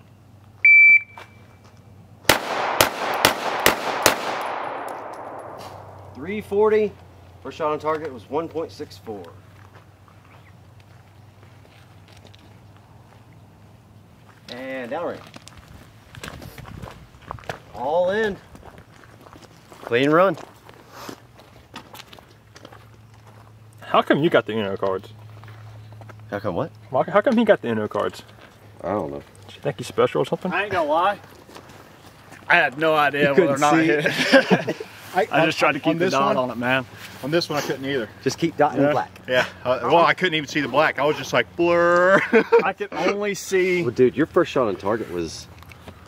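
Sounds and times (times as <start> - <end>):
handgun shots with echo: 2.3 - 6.2
footsteps on dirt: 9.1 - 23.8, 24.8 - 26.9, 30.6 - 32.8.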